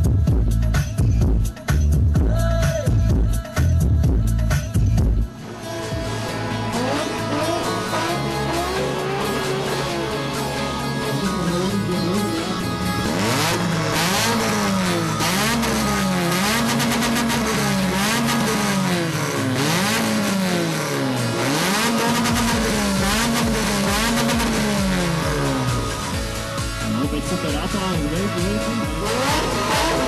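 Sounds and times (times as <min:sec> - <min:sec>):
background music: 0:00.0 - 0:30.0
car engine revving: 0:04.2 - 0:30.0.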